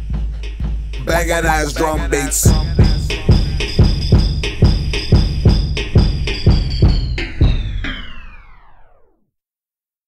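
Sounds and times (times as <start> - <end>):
hip hop drum beat: 0.0 - 8.0.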